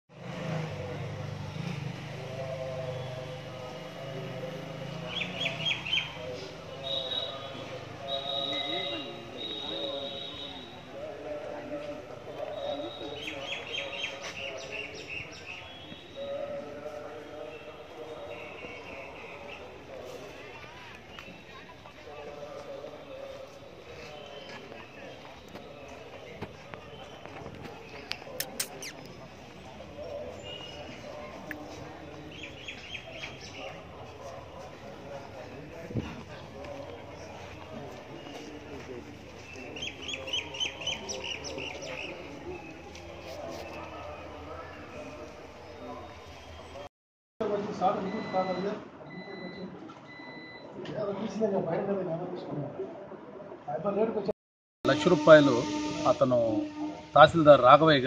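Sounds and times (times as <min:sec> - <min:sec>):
low hum of traffic: 0:00.1 - 0:58.0
outdoor background noise: 0:00.1 - 0:58.0
bird chirping: 0:27.0 - 0:29.4
high-pitched squeaky chirps: 0:28.4 - 0:29.1.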